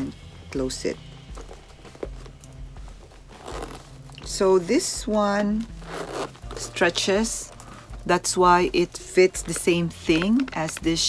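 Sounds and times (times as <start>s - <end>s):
bag rustling and crinkling: 1.0s - 7.9s.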